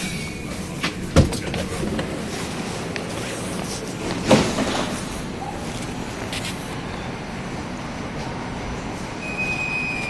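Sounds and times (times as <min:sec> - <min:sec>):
metro train rumbling: 0:00.0 - 0:10.0.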